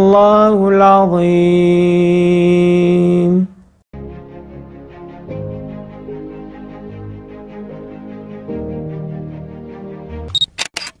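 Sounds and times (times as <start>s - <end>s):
held music chord: 4.0s - 10.3s.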